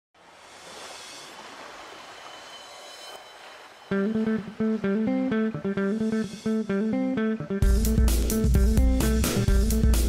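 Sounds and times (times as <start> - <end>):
steady rushing noise: 0.2 - 6.2
plucked guitar music: 3.9 - 10.0.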